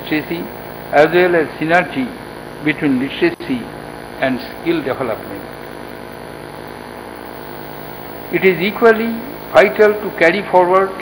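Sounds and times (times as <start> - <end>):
faint steady tones: 0.0 - 1.3, 4.1 - 10.3
hall hum and hiss: 0.0 - 2.0, 3.0 - 10.4.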